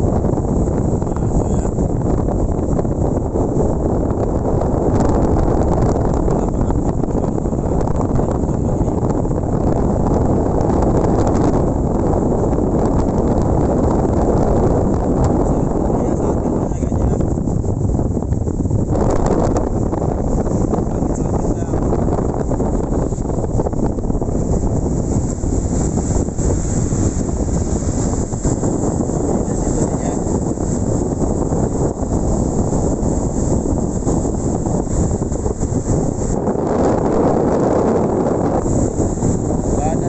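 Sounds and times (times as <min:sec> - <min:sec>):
storm wind on microphone: 0:00.0 - 0:40.0
surf breaking on shore: 0:00.0 - 0:40.0.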